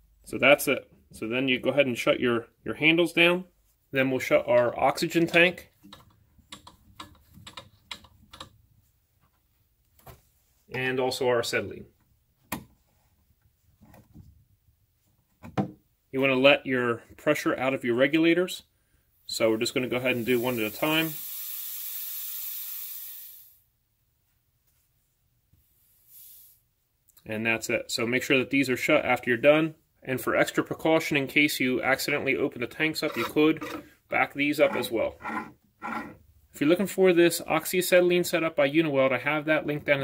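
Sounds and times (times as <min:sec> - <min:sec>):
gas hissing from torch tip: 0:20.1 - 0:23.6.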